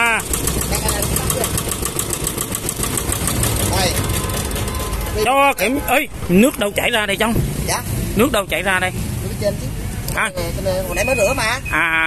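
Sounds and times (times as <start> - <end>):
cultivator engine idling: 0.0 - 4.9.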